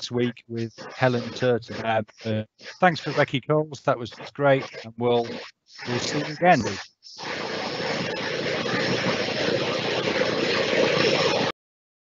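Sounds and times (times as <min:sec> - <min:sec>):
steady rushing noise: 0:05.8 - 0:11.5.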